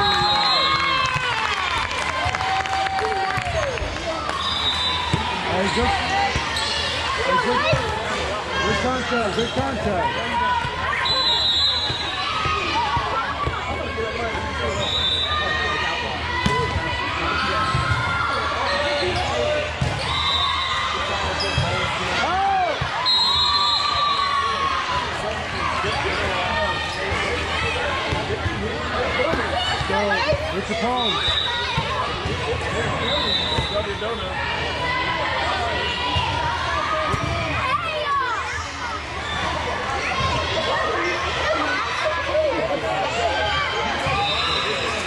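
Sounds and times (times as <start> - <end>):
referee whistle blasts: 0.0 - 0.9, 11.0 - 12.2, 23.0 - 24.2, 31.0 - 31.7, 33.0 - 34.1
voices in echoing gym: 0.0 - 45.0.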